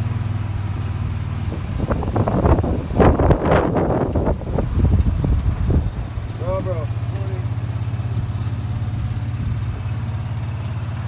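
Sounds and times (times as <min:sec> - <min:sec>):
low motor hum: 0:00.0 - 0:11.0
wind buffeting microphone: 0:01.4 - 0:06.7.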